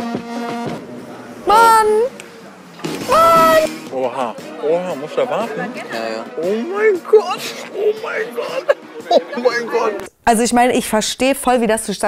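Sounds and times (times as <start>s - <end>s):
person exclaiming high-pitched: 1.5s - 2.1s, 3.1s - 3.7s.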